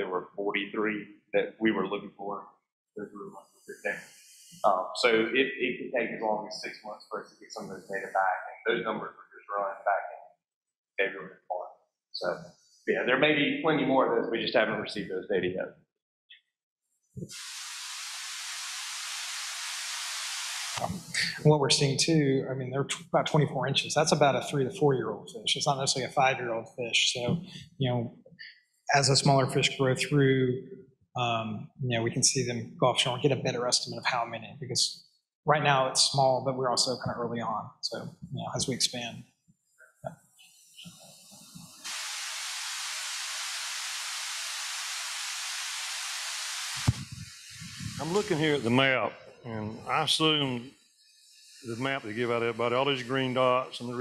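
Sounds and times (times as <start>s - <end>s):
steady high hiss: 7.6s - 9.0s, 17.2s - 22.4s, 40.5s - 54.0s.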